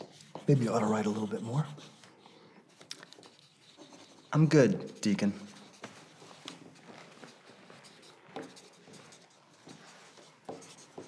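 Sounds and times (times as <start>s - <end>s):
pencils scratching on paper: 0.0s - 11.0s.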